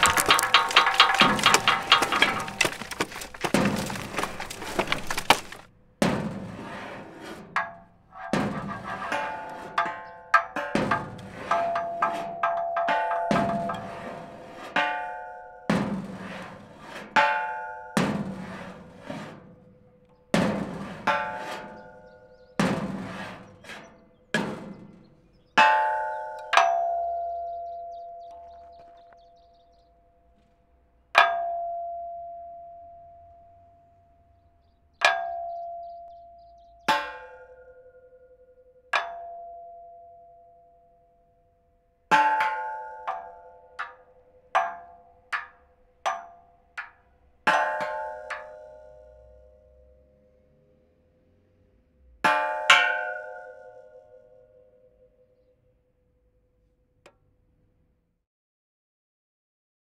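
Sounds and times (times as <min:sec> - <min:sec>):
struck metal clangs ringing: 0:00.0 - 0:05.6, 0:35.0 - 0:38.2, 0:42.1 - 0:49.2, 0:52.3 - 0:54.6
bell-like metallic clangs: 0:25.6 - 0:28.8, 0:31.2 - 0:33.6, 0:35.0 - 0:41.0, 0:52.3 - 0:55.5.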